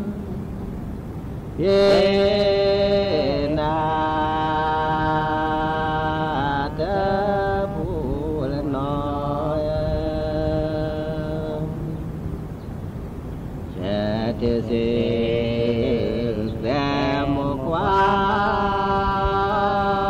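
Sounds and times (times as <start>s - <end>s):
person chanting in held notes: 0.0s - 12.3s, 13.7s - 20.0s.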